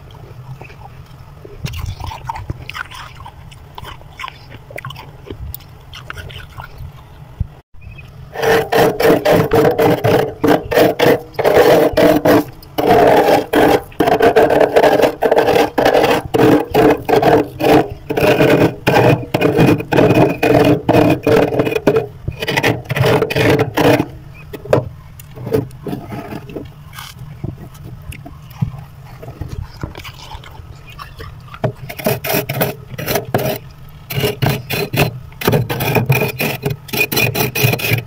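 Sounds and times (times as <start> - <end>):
metal spoon scraping frost: 8.4 - 24.2, 31.8 - 38.0.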